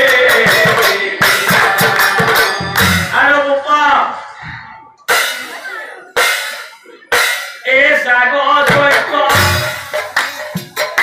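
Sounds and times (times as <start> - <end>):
sharp drum strikes: 0.0 - 3.2
man singing: 0.0 - 4.2, 7.6 - 10.2.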